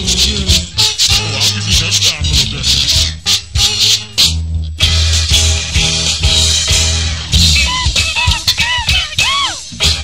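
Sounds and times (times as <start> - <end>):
dense percussion groove: 0.0 - 10.0
steady bass line: 0.0 - 10.0.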